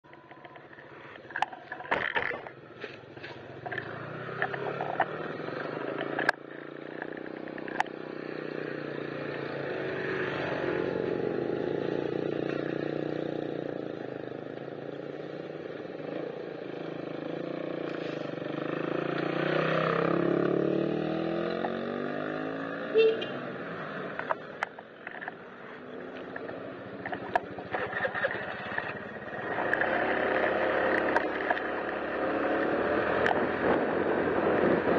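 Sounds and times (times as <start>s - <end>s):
vehicles passing on road: 0.0s - 34.9s
sharp clicks and knocks: 0.1s - 8.0s, 26.1s - 32.2s.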